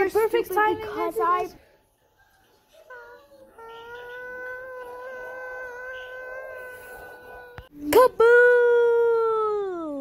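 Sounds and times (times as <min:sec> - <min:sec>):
long high wail: 0:03.6 - 0:07.7.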